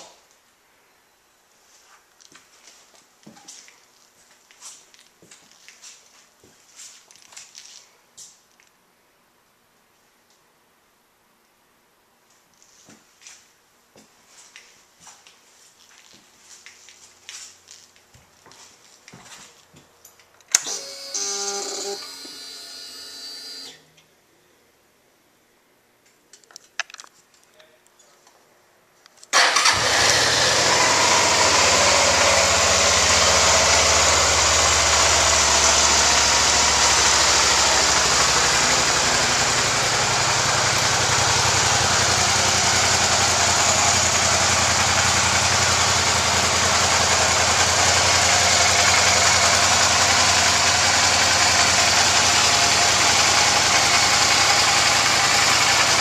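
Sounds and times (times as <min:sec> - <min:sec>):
motorcycle engine idling: 0:29.5 - 0:56.0.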